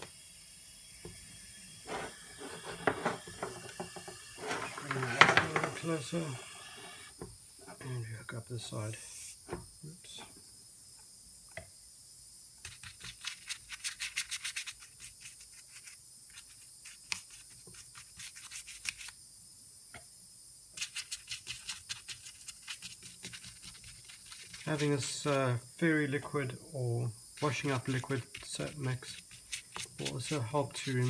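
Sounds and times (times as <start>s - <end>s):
bristle brush scrubbing metal: 1.8s - 3.2s, 20.8s - 25.4s, 27.4s - 31.0s
brush tapping: 27.4s - 31.0s.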